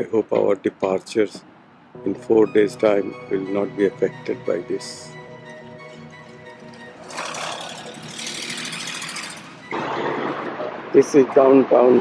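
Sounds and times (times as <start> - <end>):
cars driving past: 5.9 - 12.0.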